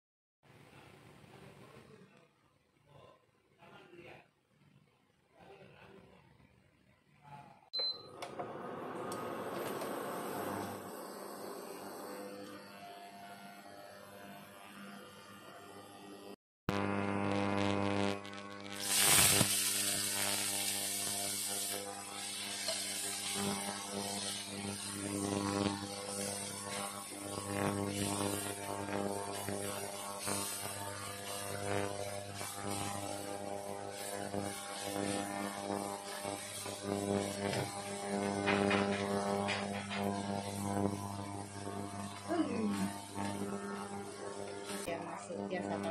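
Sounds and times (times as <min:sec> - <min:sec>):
electrical buzzing hum: 0:10.1 - 0:45.9
food sizzling in oil: 0:16.9 - 0:45.9.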